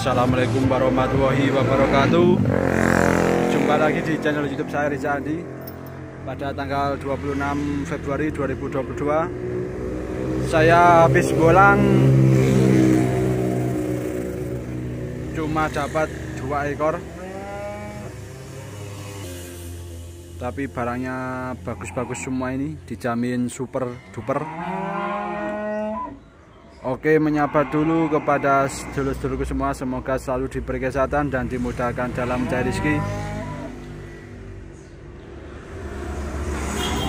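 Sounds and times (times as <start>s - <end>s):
truck engine rumbling past: 0.0s - 23.1s
calf mooing: 17.1s - 19.3s, 21.7s - 22.4s, 23.8s - 26.2s, 27.2s - 29.0s, 32.2s - 33.8s.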